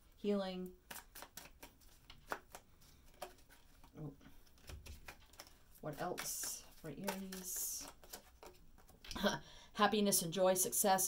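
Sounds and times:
cards clicking and flicking: 0.8 - 9.0.

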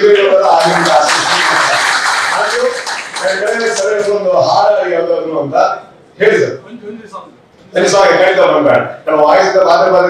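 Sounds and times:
audience applauding: 0.4 - 4.0.

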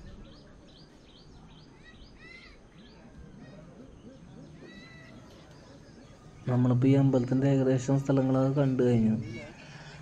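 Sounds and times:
faint outdoor ambience: 0.0 - 10.0
small birds chirping: 0.0 - 10.0.

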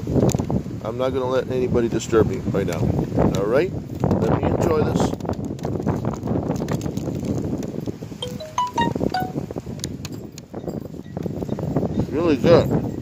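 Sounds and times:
chime-like melody: 8.2 - 9.5.

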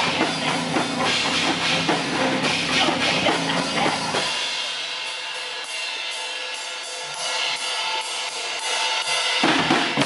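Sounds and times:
heavy drum hits: 0.0 - 4.4, 9.4 - 10.0
cymbals crashing: 0.0 - 10.0.

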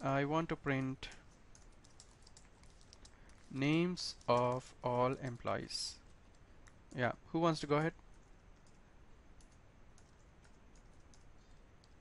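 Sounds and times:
computer keyboard keystrokes: 0.7 - 5.5, 8.2 - 8.8, 9.4 - 12.0.

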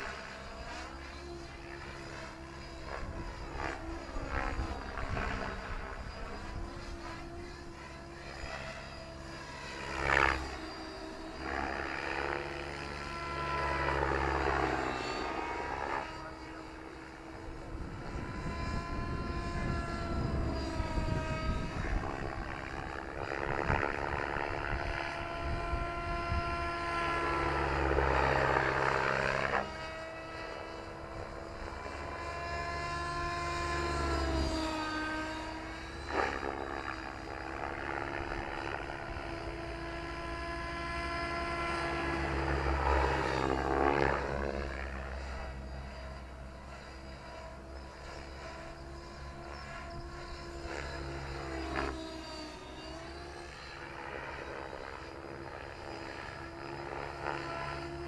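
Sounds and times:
rc helicopter rotor whine: 0.0 - 58.0.

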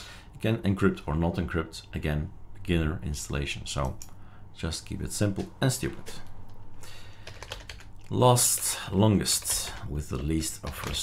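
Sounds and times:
computer keyboard typing: 7.1 - 11.0.

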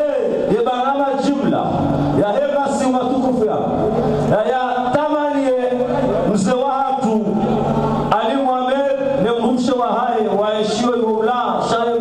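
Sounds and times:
man chanting into a microphone: 8.1 - 12.0.

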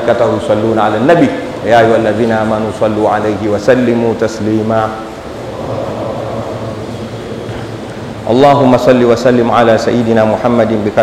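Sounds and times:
rushing room noise: 0.0 - 11.0.

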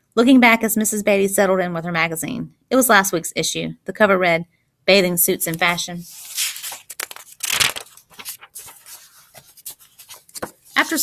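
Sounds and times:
paper rustling and crinkling: 5.5 - 11.0.

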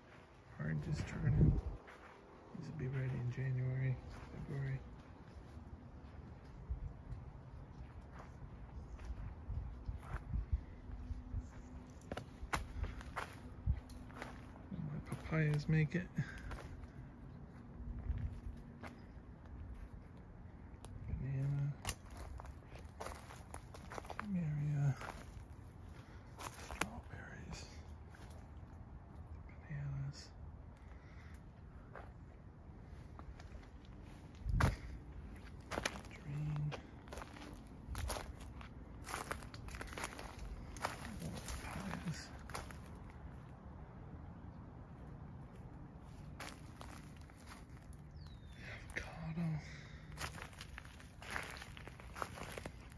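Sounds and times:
footsteps on mulch and soil: 0.0 - 28.8, 30.8 - 43.7, 45.4 - 52.9
low steady rumble: 0.0 - 52.9.

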